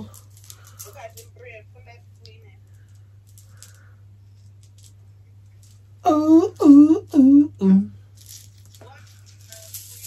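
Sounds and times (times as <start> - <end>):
small beads clicking: 0.0 - 1.6, 2.2 - 6.0, 8.0 - 10.0
braids rustling: 0.0 - 7.2, 7.9 - 10.0
steady low hum: 0.0 - 10.0.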